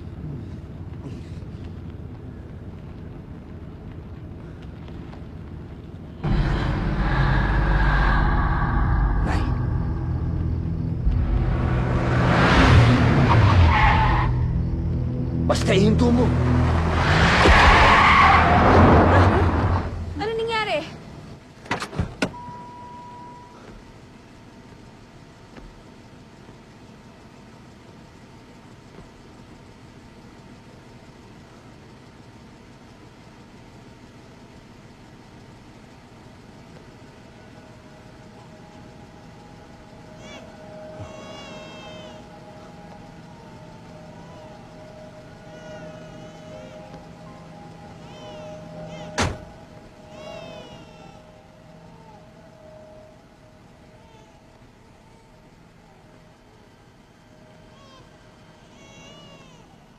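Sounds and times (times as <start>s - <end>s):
car engine rumbling: 0.0s - 59.9s
low ambient hum: 0.0s - 59.9s
steady high tone: 6.2s - 12.7s, 37.1s - 59.6s
car passing by: 6.2s - 14.3s.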